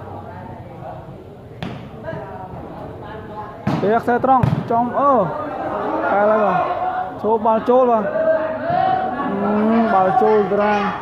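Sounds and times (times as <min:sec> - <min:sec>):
murmur of spectators: 0:00.0 - 0:11.0.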